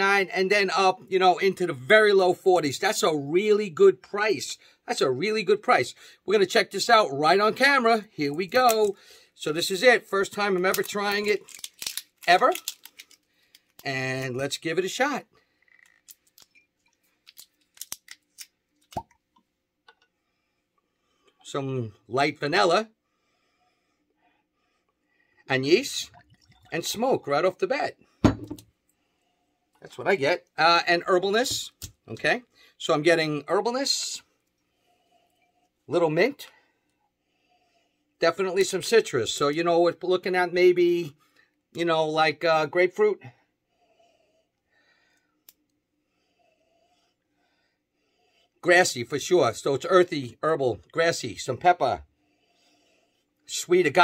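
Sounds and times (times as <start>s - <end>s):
bottle stopper squeaking and clicking: 15.7s - 17.0s.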